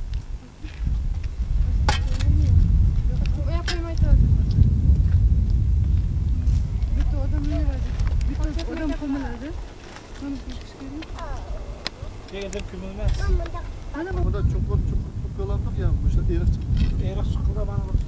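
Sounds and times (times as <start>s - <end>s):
steady low rumble: 0.0s - 18.0s
people's voices: 1.8s - 5.1s, 6.4s - 18.0s.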